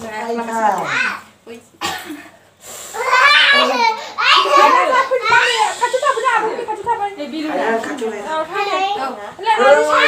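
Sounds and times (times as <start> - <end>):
children talking: 2.9 - 10.0.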